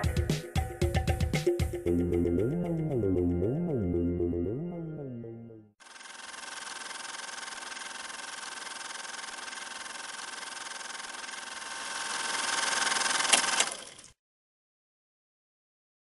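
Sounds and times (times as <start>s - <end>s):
hissing mechanical running with rattle: 5.8s - 14.1s.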